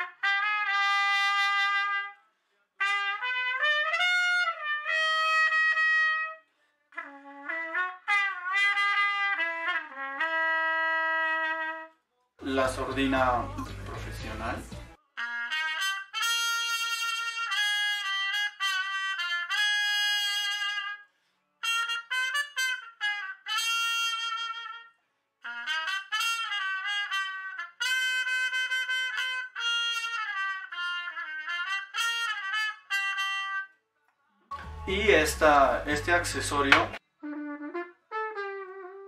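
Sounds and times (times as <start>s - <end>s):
muted trumpet melody: 0.0s - 2.2s, 2.8s - 13.9s, 15.0s - 33.8s, 34.5s - 39.0s.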